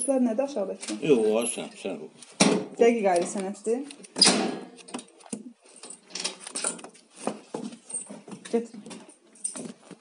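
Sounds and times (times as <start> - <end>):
objects clicking and rustling: 3.1 - 10.0.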